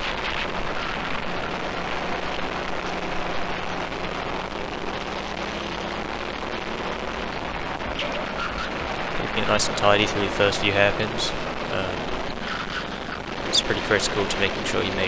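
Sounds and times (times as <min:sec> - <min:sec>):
kart engine running: 0:00.0 - 0:15.0.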